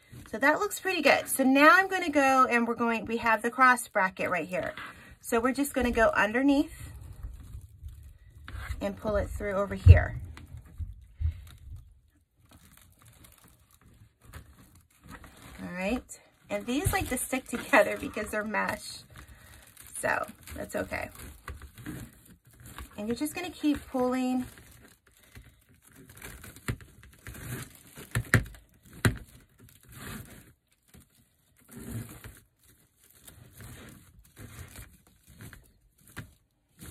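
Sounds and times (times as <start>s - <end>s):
plastic mesh rustling and crinkling: 0.0s - 2.2s, 2.8s - 36.9s.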